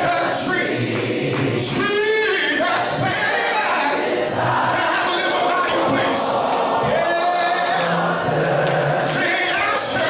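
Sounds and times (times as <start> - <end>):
voices singing together: 0.0 - 10.0.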